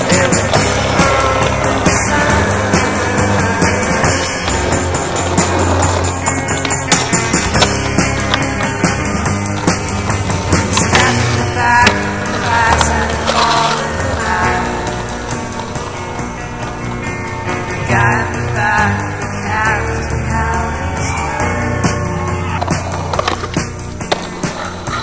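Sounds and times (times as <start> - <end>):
skateboard clacks: 0.0 - 19.0, 21.8 - 25.0
rock music: 0.0 - 25.0
skateboard wheels rolling on pavement: 0.0 - 25.0.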